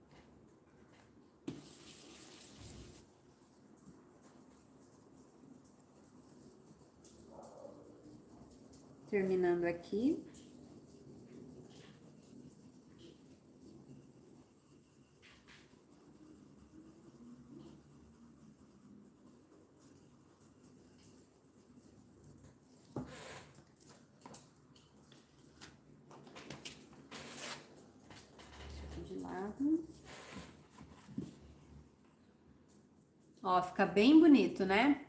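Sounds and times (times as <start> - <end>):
paintbrush scratching on stencil: 3.8 - 23.1.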